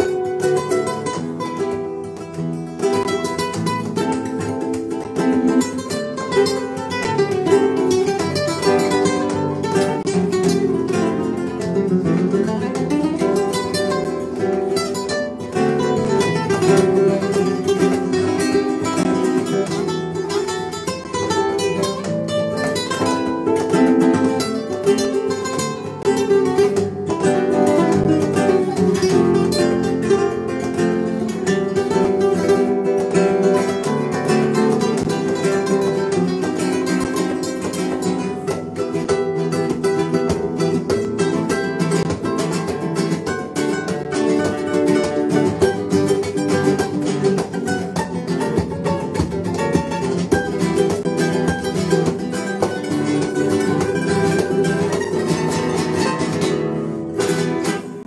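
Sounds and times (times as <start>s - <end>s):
classical guitar duet: 0.0s - 58.0s.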